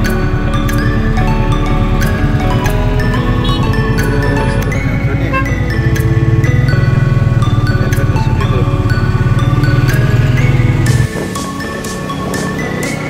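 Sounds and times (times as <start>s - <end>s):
mallet percussion music: 0.0s - 13.0s
motorcycle engine running: 0.0s - 13.0s.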